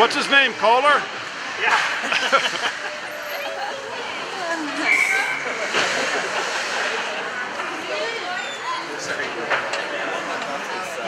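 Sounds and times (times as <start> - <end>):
crowd chatter: 0.0 - 11.0
high steady tone: 2.8 - 5.4.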